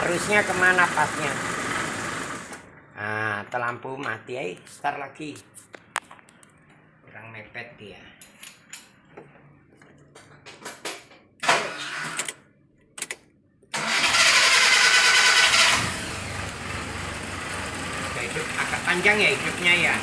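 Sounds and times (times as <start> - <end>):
car engine starting and running: 0.0 - 2.7, 11.4 - 12.4, 13.0 - 20.0.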